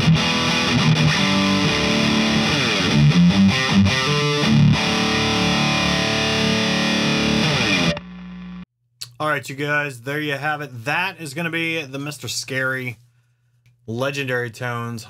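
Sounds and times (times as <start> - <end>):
distorted electric guitar riffing: 0.0 - 8.6.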